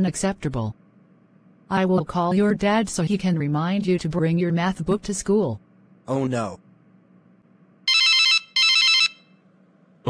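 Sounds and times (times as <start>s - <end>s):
telephone ringing: 7.9s - 9.4s.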